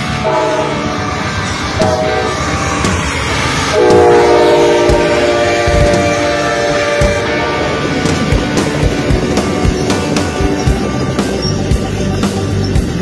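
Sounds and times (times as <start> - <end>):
train rumble: 0.0 - 13.0
locomotive air horn blasts: 0.1 - 1.1, 1.7 - 2.7, 3.4 - 11.6.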